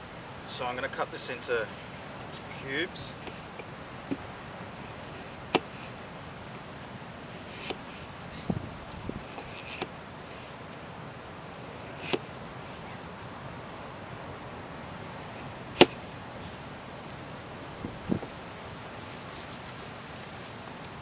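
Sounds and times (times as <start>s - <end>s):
background hiss: 0.0s - 21.0s
knife cutting potato on plastic: 7.4s - 7.8s, 9.3s - 9.9s.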